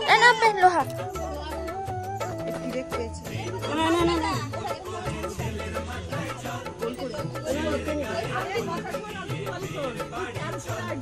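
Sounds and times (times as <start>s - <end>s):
background music with bass line: 0.0s - 11.0s
women chattering: 0.0s - 11.0s.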